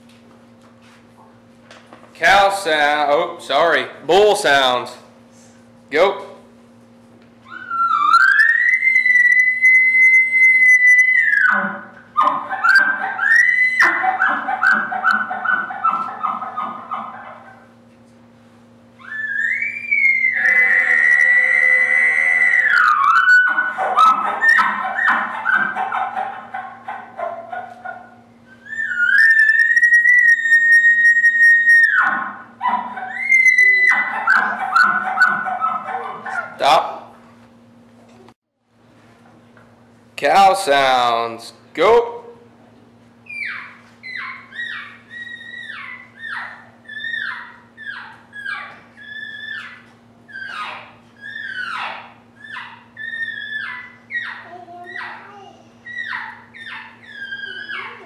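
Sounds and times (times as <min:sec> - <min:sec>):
elk call bugling whistle: 0:07.5 - 0:14.0, 0:19.0 - 0:25.2, 0:28.6 - 0:32.2.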